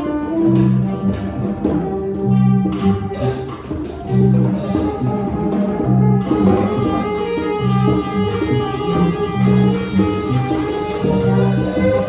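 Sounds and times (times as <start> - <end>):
free jazz band: 0.0 - 12.0.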